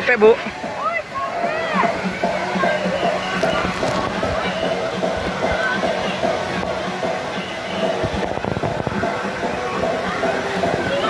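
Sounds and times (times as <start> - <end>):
distant voices: 0.0 - 11.0
music: 0.0 - 11.0
steady wash of sound: 0.0 - 11.0.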